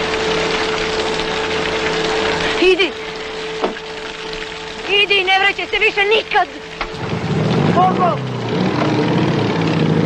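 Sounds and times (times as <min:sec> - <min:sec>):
motorcycle engine revving: 0:07.0 - 0:10.0.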